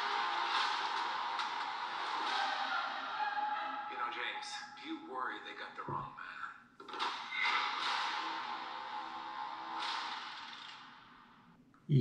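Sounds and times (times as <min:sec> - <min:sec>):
man speaking: 0:04.0 - 0:06.6.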